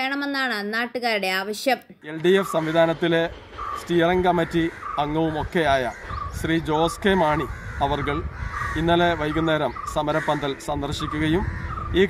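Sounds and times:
man talking: 0:02.0 - 0:12.0.

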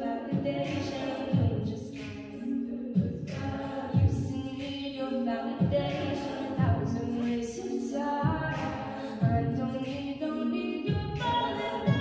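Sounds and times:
women singing a cappella chords: 0:00.0 - 0:12.0
vocal percussion kick thump: 0:00.3 - 0:02.2, 0:03.0 - 0:04.4, 0:05.6 - 0:07.0, 0:08.2 - 0:09.6, 0:10.9 - 0:12.0.

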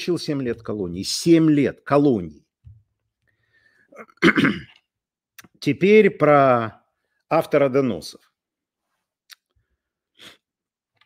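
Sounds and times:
man clearing his throat: 0:04.0 - 0:04.8.

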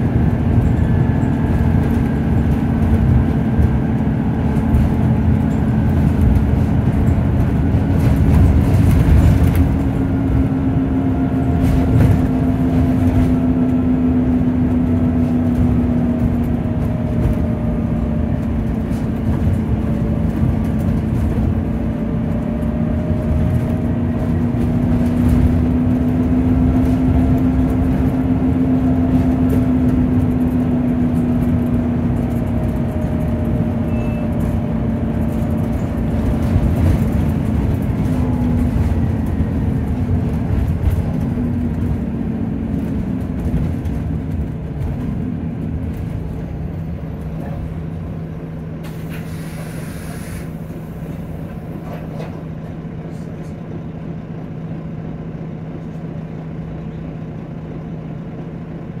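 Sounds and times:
bus engine and drivetrain whine: 0:00.0 - 0:59.0.

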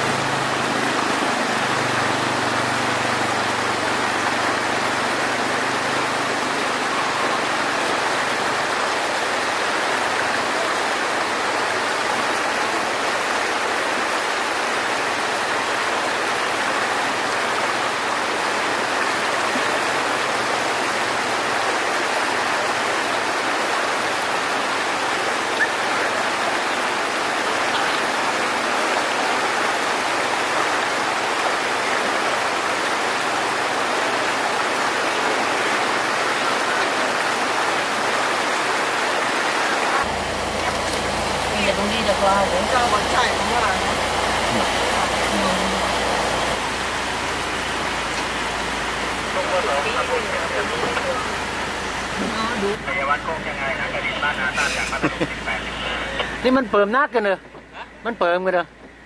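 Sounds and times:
floodwater rushing: 0:00.0 - 0:58.8.

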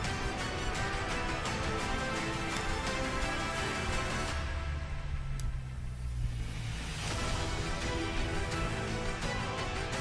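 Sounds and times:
low bass drone music: 0:00.0 - 0:10.0.

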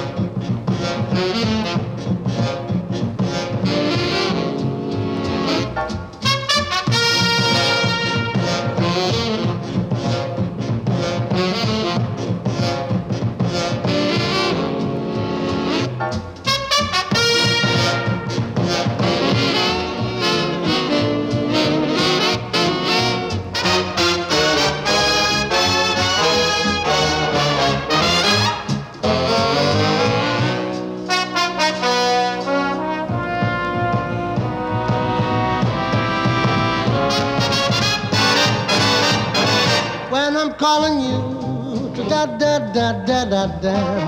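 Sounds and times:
swing big band playing: 0:00.0 - 0:44.0.

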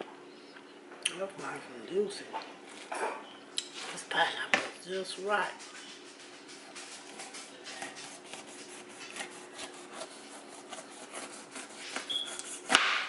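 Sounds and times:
knife scraping pineapple rind: 0:05.6 - 0:13.0.

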